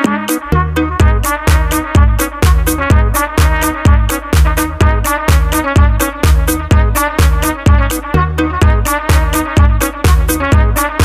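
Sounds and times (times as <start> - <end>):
electronic house music: 0.0 - 11.0.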